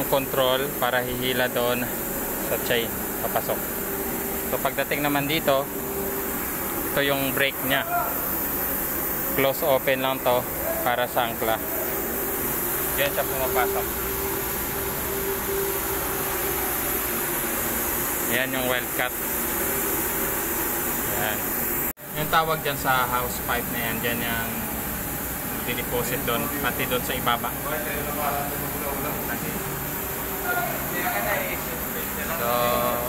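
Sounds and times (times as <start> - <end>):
faint steady hum: 0.0 - 33.0
machinery hiss: 0.0 - 33.0.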